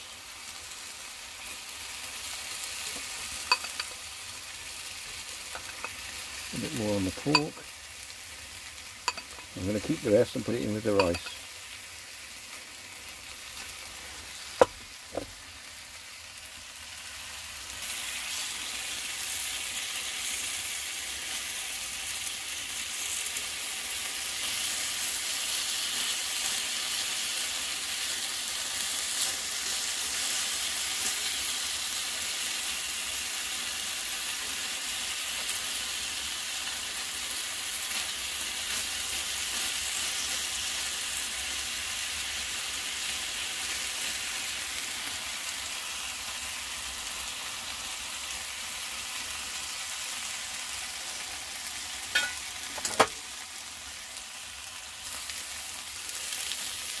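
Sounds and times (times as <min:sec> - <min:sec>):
meat frying in a pan: 0:00.0 - 0:57.0.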